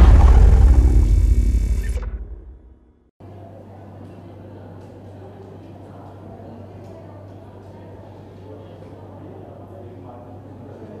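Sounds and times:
deep low boom: 0:00.0 - 0:03.0.

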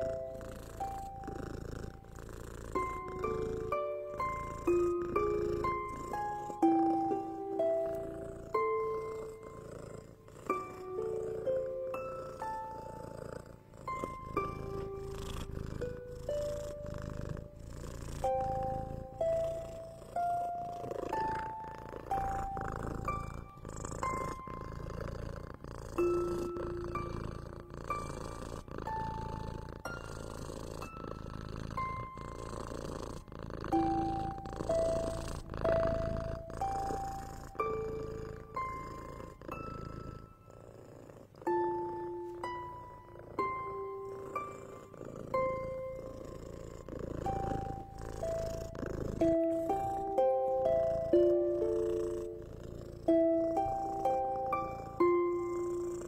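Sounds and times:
cat purring: 0:00.0 - 0:56.0
soft plucked melody: 0:00.0 - 0:56.0.

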